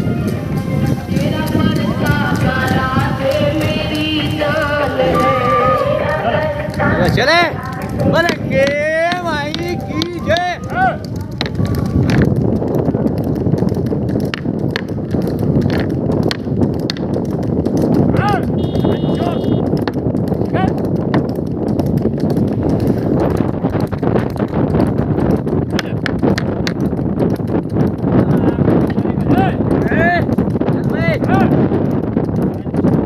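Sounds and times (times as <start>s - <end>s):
hooves clip-clopping: 0.0s - 33.0s
wooden cart rumbling and rattling: 0.0s - 33.0s
sharp knocks: 11.4s - 19.0s.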